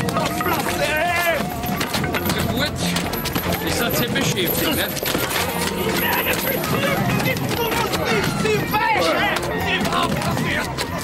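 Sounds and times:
men shouting and grunting: 0.0 - 11.0.

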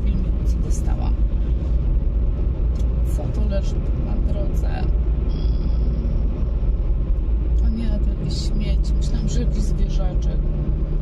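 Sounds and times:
car cabin road noise: 0.0 - 11.0.

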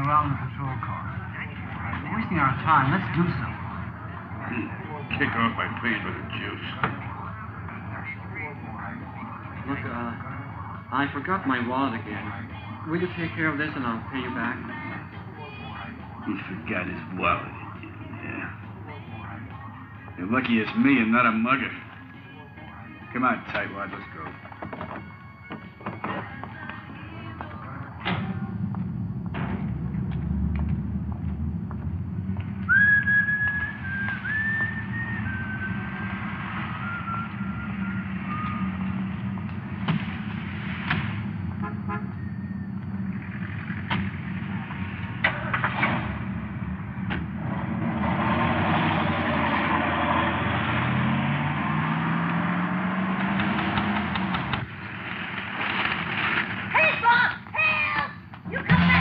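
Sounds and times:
car engine running: 0.0 - 59.0
person whistling a tune: 32.7 - 36.0.

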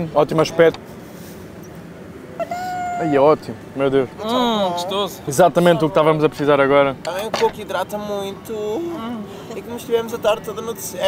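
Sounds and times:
man speaking: 3.0 - 11.0.

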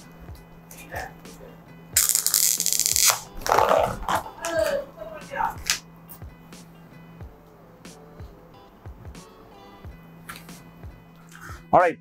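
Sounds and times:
plastic lid crackling: 2.0 - 4.7.

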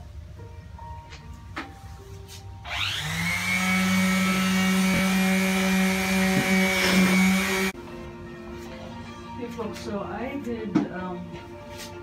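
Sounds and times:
power sander sanding wood: 2.7 - 7.8.

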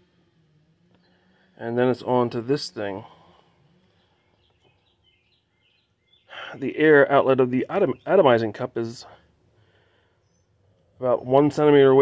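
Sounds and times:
faint bird chirps: 3.0 - 6.9, 9.0 - 11.4.

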